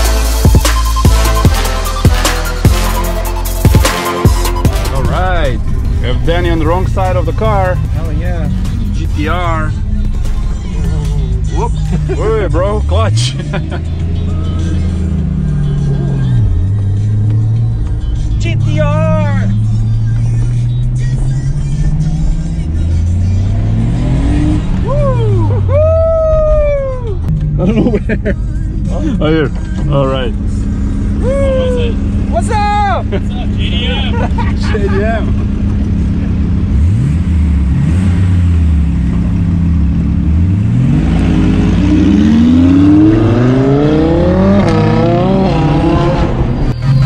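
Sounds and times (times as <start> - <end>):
background music: 0.0 - 35.7, 36.8 - 47.0
car engine running: 0.0 - 47.0.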